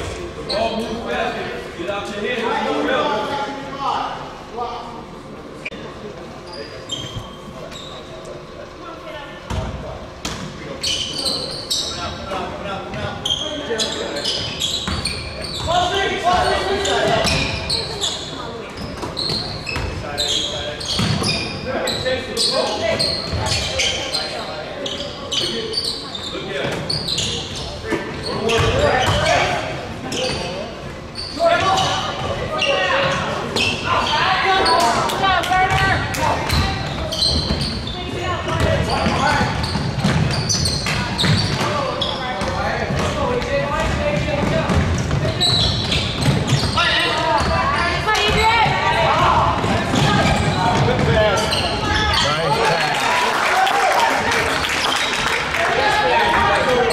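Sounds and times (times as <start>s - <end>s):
players and spectators calling: 45.1s - 56.9s.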